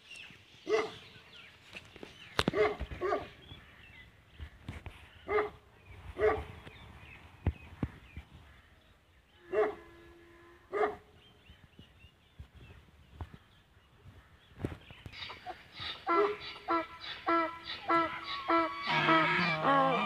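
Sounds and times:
dog barking: 0.7s - 1.0s, 2.5s - 3.3s, 5.3s - 5.6s, 6.2s - 6.5s, 9.5s - 9.8s, 10.7s - 11.1s.

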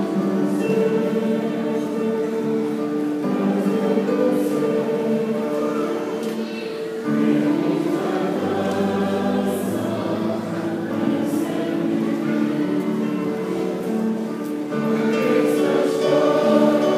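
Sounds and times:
church choir singing: 0.0s - 16.9s.

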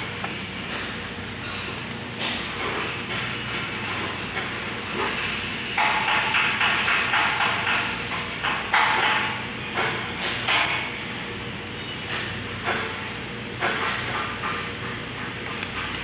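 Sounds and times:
welding arc crackling: 1.0s - 8.1s, 12.5s - 16.0s.

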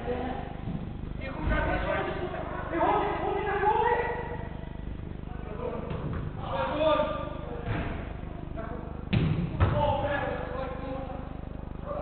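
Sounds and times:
football being kicked thuds: 9.1s - 9.9s.

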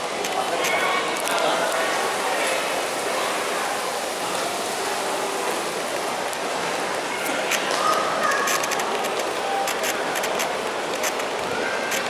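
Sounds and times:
steady indoor hiss: 0.0s - 12.0s.

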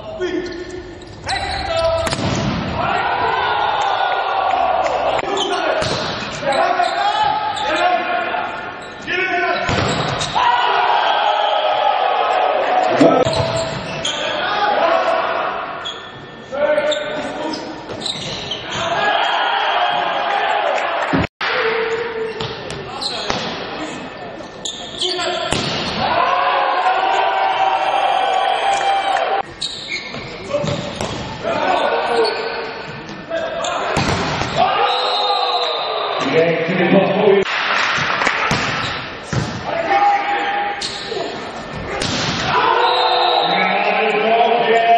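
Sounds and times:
volleyball hits: 5.8s - 6.4s, 25.5s - 26.1s, 33.9s - 34.6s, 37.5s - 39.7s.

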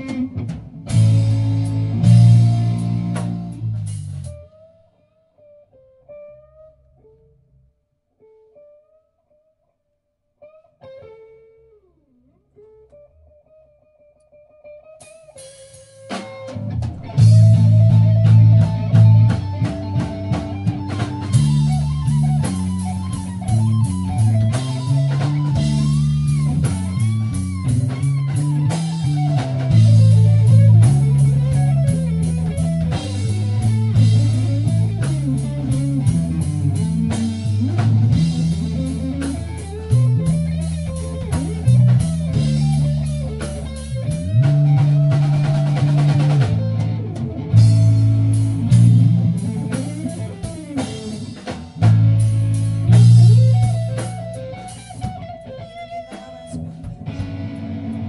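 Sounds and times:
loud moving bass line: 0.0s - 4.5s, 16.6s - 58.0s
live rock band playing: 0.0s - 4.9s, 14.7s - 58.0s.

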